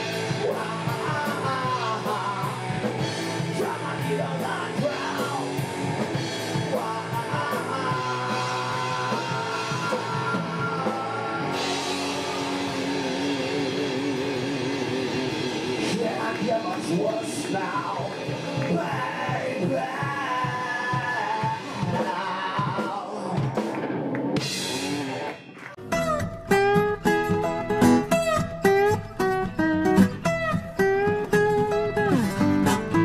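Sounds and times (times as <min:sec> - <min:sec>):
man singing: 0:00.0 - 0:23.6
bass guitar: 0:00.0 - 0:33.0
distorted electric guitar: 0:00.0 - 0:33.0
drum kit: 0:00.0 - 0:33.0.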